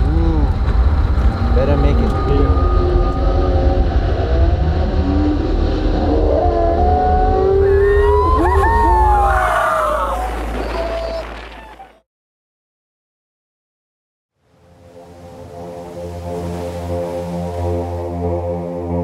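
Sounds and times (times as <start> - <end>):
boat engines rumbling: 0.0 - 11.6
people whooping and shouting: 6.4 - 12.0.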